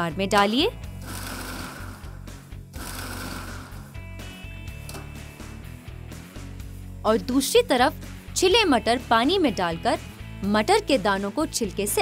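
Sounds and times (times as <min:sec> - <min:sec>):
background music: 0:00.0 - 0:12.0
food processor motor running: 0:01.0 - 0:04.0.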